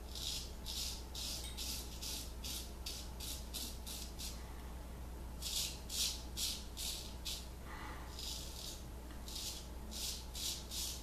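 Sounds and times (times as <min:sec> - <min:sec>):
straight razor scraping stubble: 0:00.1 - 0:04.4, 0:08.2 - 0:11.0.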